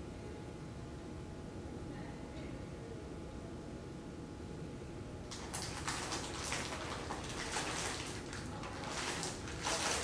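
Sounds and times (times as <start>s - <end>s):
plastic wrapper crinkling: 5.3s - 10.0s.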